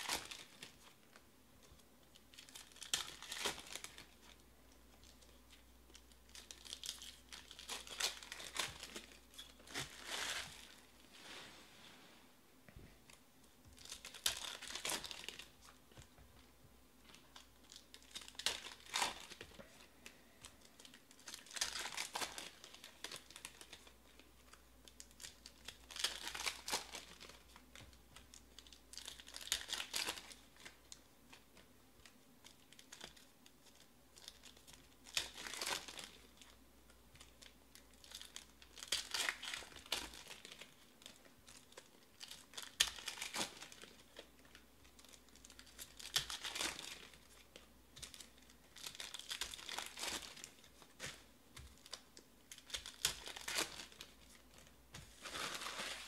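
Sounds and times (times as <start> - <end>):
foil wrappers torn and crinkled: 2.3 - 4.4, 6.3 - 10.8, 13.8 - 15.5, 17.4 - 19.6, 20.5 - 24.2, 25.0 - 30.8, 32.4 - 36.6, 37.2 - 56.0.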